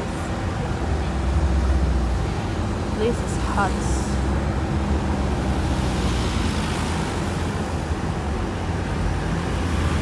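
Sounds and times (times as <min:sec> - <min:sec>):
street noise low rumble: 0:00.0 - 0:10.0.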